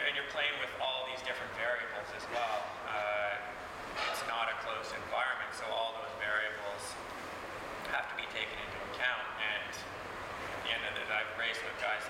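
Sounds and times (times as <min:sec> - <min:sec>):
man talking: 0:00.0 - 0:07.0, 0:07.8 - 0:10.0, 0:10.6 - 0:12.0.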